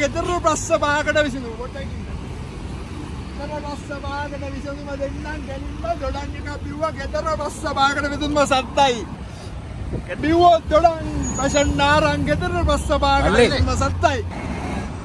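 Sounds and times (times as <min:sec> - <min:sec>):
man talking: 0:00.0 - 0:02.4, 0:03.3 - 0:09.2, 0:09.9 - 0:14.3
road traffic rumble: 0:00.0 - 0:15.0.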